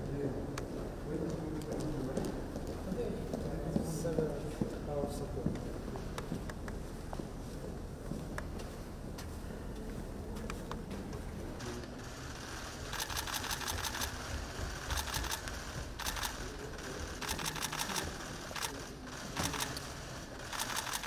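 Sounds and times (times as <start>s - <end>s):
camera shutters clicking: 12.9s - 14.2s, 14.9s - 16.6s, 17.2s - 21.0s.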